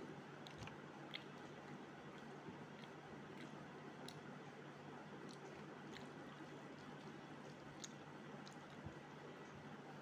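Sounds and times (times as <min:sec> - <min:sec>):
low steady hiss: 0:00.0 - 0:10.0
chewing: 0:00.4 - 0:09.6.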